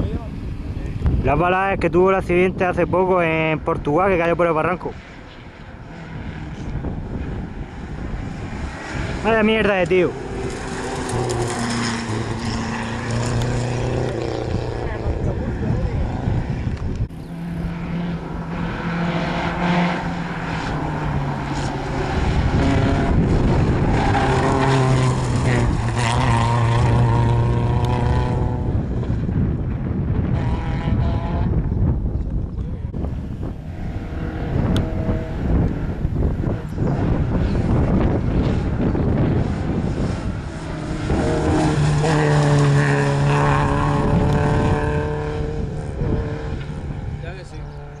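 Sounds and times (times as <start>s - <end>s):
rally car engines revving: 0.0s - 48.0s.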